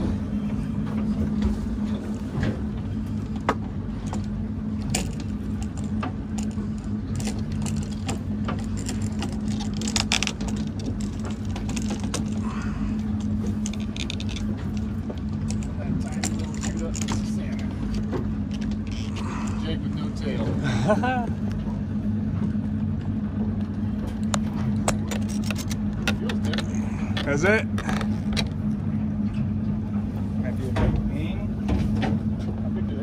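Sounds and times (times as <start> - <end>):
boat engine idling: 0.0 - 33.0.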